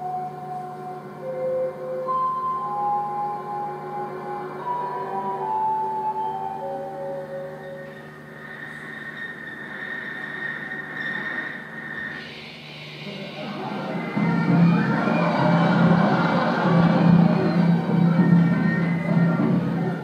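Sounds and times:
film music with held notes: 0:00.0 - 0:20.0
high steady tone: 0:00.0 - 0:20.0.

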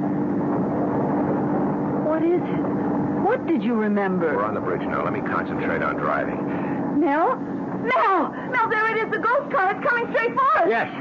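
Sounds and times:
car engine drone: 0:00.0 - 0:11.0
road noise: 0:00.0 - 0:11.0.

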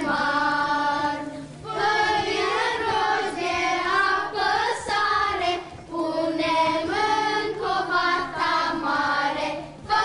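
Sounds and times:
children singing: 0:00.0 - 0:10.0.

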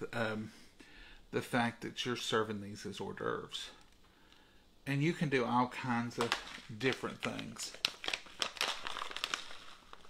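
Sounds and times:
plastic food packet crinkling: 0:05.8 - 0:10.0.

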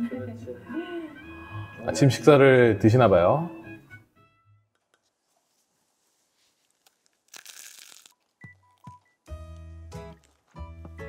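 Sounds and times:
crunch of biting toast: 0:06.6 - 0:10.7.

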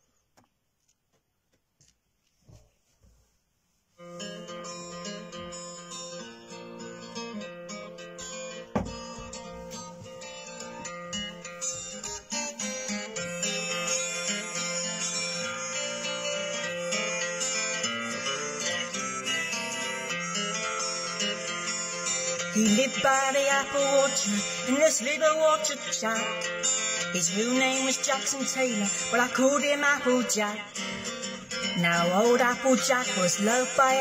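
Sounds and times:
country backing track: 0:03.9 - 0:34.0
plucked strings: 0:04.0 - 0:34.0
faint handling knocks: 0:08.7 - 0:10.2.

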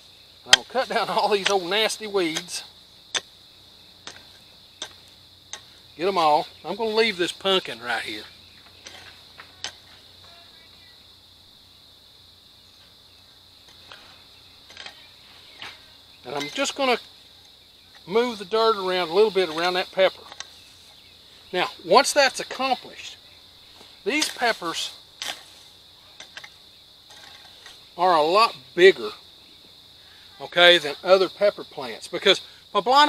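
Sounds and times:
insects chirring: 0:00.0 - 0:33.0
hoe chopping dry soil: 0:00.5 - 0:03.4, 0:04.0 - 0:07.4, 0:13.7 - 0:17.0, 0:24.1 - 0:25.6.

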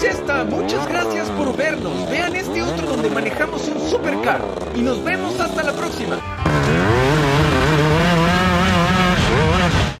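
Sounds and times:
kart engine at high revs: 0:00.0 - 0:10.0.

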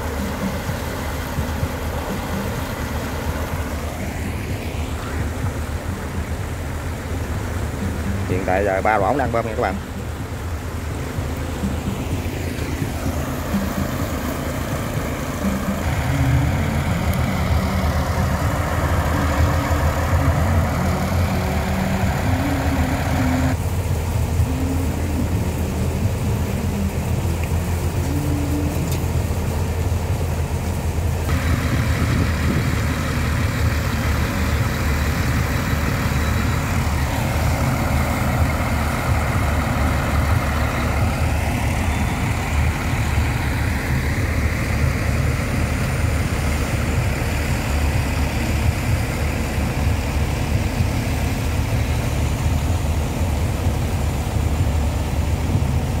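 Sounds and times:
low engine drone: 0:00.0 - 0:56.0.

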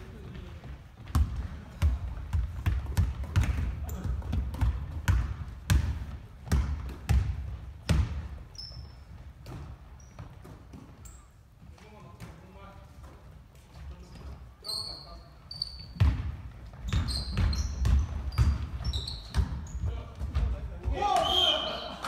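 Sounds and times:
basketball bouncing: 0:00.1 - 0:08.4, 0:15.9 - 0:21.0
sneaker squeaks: 0:08.2 - 0:12.0, 0:13.9 - 0:20.5
players calling out: 0:20.8 - 0:22.0
person shouting: 0:20.9 - 0:22.0.

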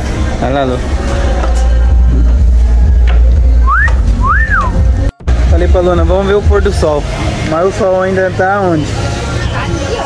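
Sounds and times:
person whistling rising note: 0:03.6 - 0:04.8.

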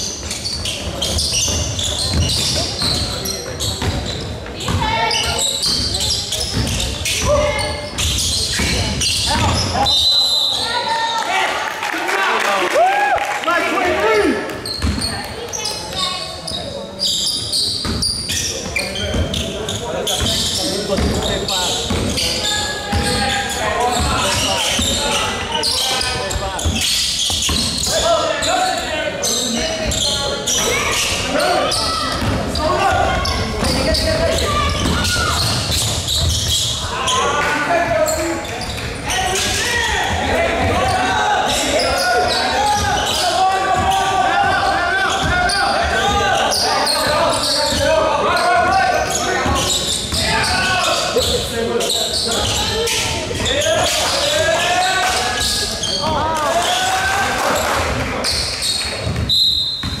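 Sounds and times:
babble of voices echoing: 0:00.0 - 0:59.3
basketball bouncing on gym floor: 0:00.8 - 0:09.8, 0:14.5 - 0:15.6, 0:17.8 - 0:18.4, 0:20.1 - 0:22.2, 0:32.1 - 0:36.8, 0:58.9 - 1:00.0.

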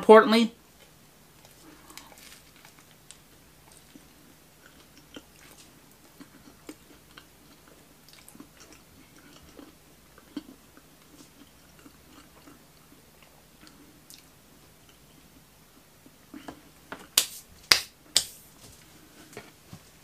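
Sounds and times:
faint chewing mouth clicks: 0:03.7 - 0:15.0.

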